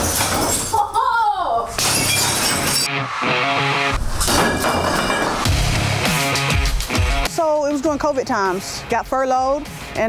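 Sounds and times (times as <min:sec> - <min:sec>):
glass bottles shattering: 0:00.0 - 0:01.0, 0:01.8 - 0:02.9, 0:04.1 - 0:05.6.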